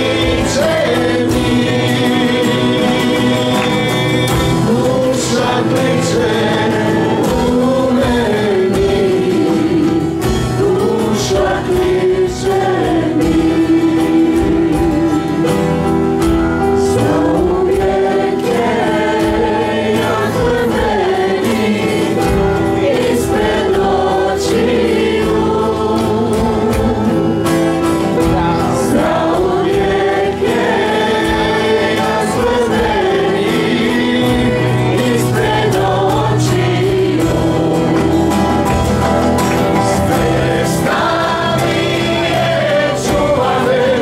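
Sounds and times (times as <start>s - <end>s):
acoustic guitars: 0.0s - 44.0s
keyboard playing: 0.0s - 44.0s
voices singing together: 0.0s - 44.0s.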